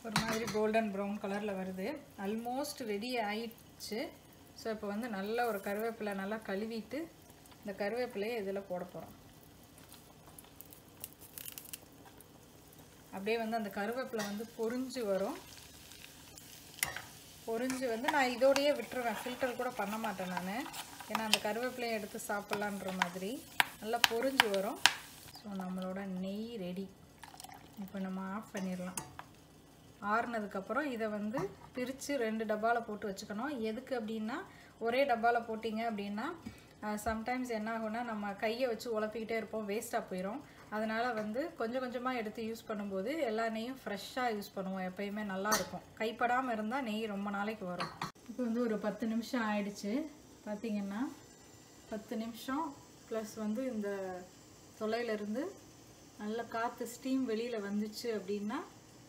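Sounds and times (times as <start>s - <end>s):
ghee bubbling in a saucepan: 0.0s - 59.0s
woman talking: 51.9s - 55.6s, 56.2s - 58.8s.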